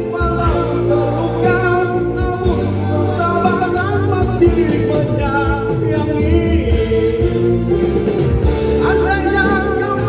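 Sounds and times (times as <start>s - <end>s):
backing track over loudspeakers: 0.0s - 10.0s
man singing pop ballad: 0.0s - 10.0s.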